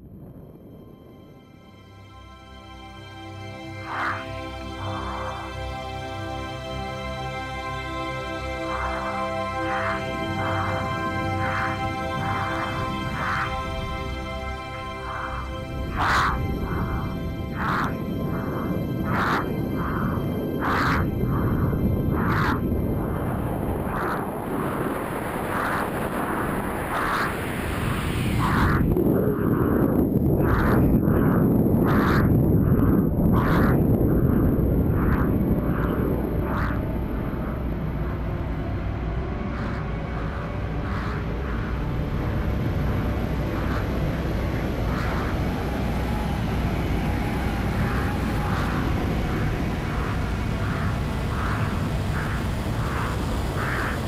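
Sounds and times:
rushing wind rumble: 0.0s - 54.0s.

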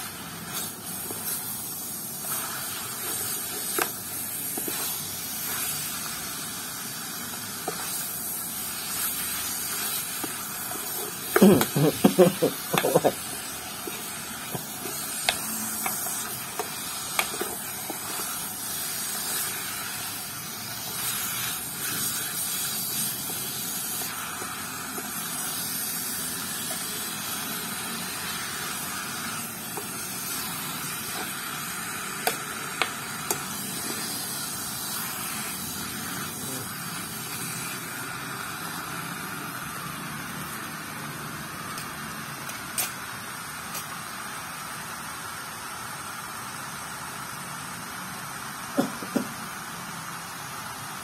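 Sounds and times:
meat sizzling in a pot: 0.0s - 51.0s.

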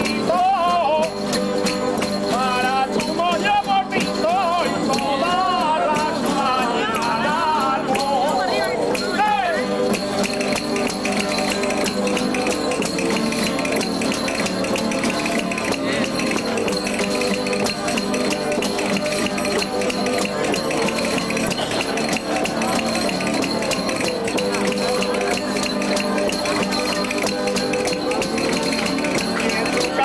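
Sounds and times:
guitars strummed: 0.0s - 30.0s
tambourine jingles rattling: 0.9s - 30.0s.

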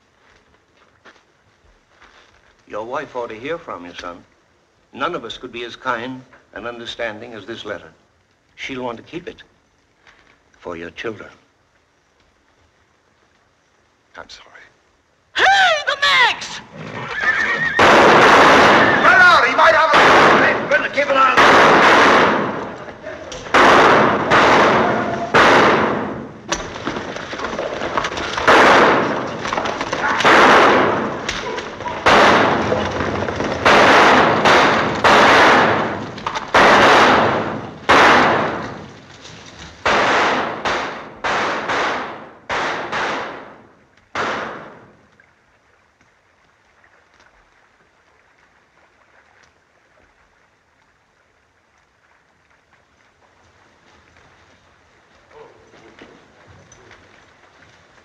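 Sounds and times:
gunshots with echo: 17.8s - 39.0s, 39.8s - 45.0s.

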